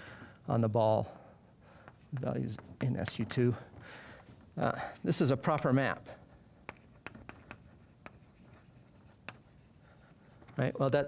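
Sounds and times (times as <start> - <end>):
chalk tapping and scraping: 1.8 - 3.6, 4.9 - 10.7.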